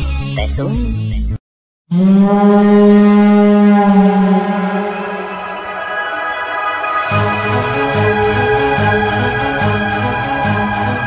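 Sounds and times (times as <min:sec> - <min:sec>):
long low horn-like note: 0:01.9 - 0:11.0.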